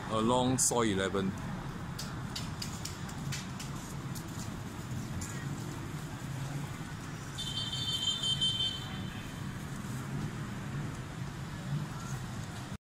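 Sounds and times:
traffic hum: 0.0s - 12.8s.

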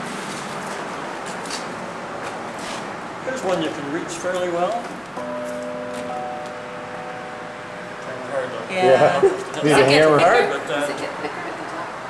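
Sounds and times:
carillon bell ringing: 5.2s - 10.3s.

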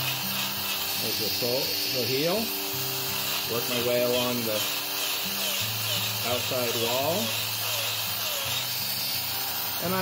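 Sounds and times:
hoof trimmer humming: 0.0s - 10.0s.

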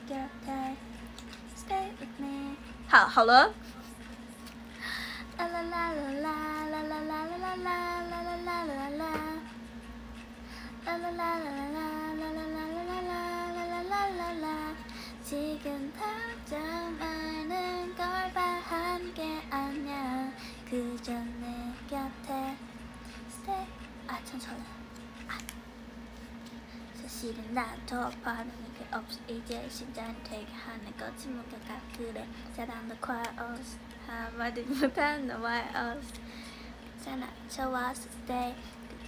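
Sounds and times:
woman singing slow melody: 0.0s - 9.7s, 10.5s - 25.5s, 26.8s - 39.0s.

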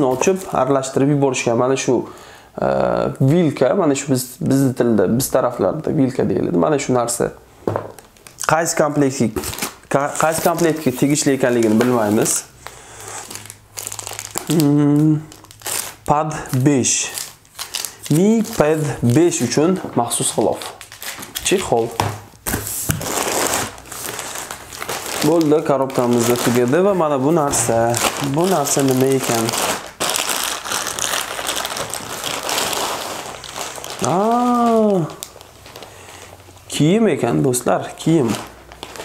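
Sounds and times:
plastic packaging crinkling: 7.8s - 39.0s.

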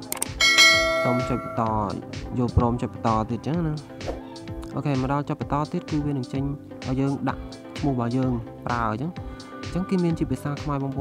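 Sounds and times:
bell ding: 0.4s - 1.9s.

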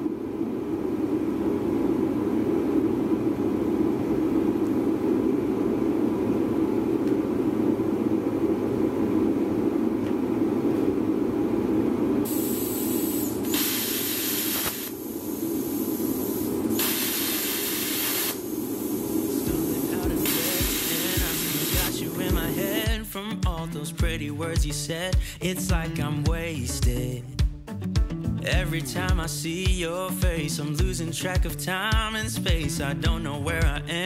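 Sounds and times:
steady low hum: 0.0s - 27.3s
welder arc crackling: 12.2s - 22.9s.

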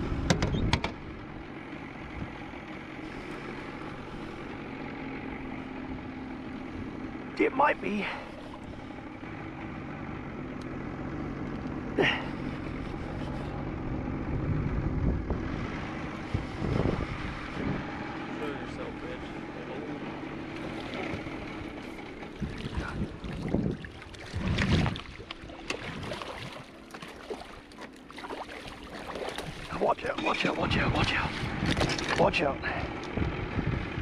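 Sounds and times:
outboard motor running: 0.0s - 34.0s.

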